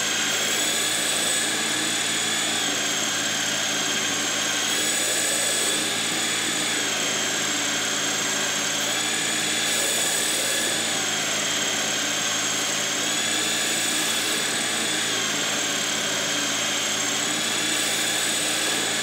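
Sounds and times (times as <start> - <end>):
metal lathe whining: 0.0 - 19.0.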